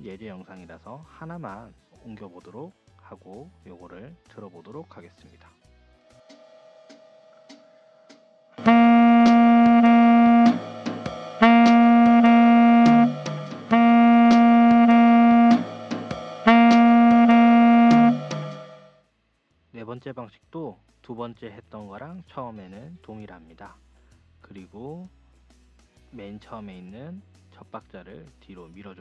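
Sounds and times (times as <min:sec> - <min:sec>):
light ticking beat: 0:08.6 - 0:18.8
tenor saxophone jazz phrase: 0:08.6 - 0:18.8.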